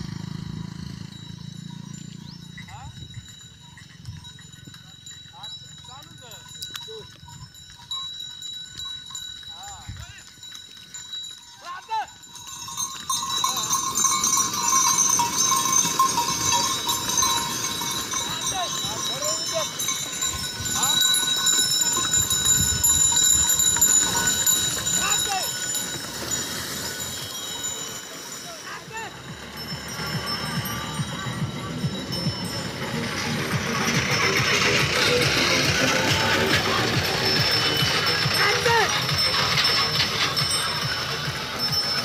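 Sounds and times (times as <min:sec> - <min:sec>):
bullock neck bells ringing: 0:00.0 - 0:42.0
carts rumbling: 0:00.0 - 0:42.0.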